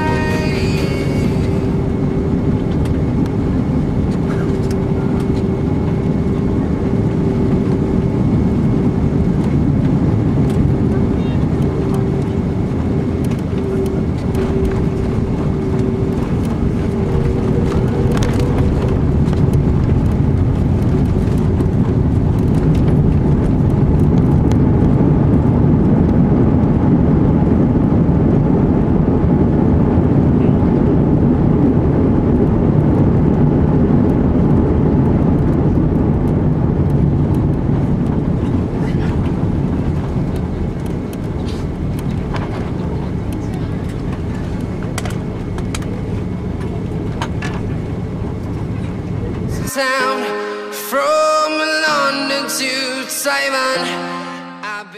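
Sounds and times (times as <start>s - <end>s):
airliner cabin engine and runway rumble: 0.0s - 54.9s.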